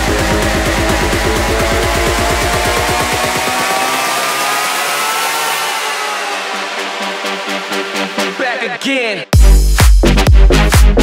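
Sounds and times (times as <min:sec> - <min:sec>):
fast pulsing bass: 0:00.0 - 0:08.6, 0:09.4 - 0:11.0
synth tones gliding upward: 0:00.0 - 0:08.6
electro house track: 0:00.0 - 0:11.0.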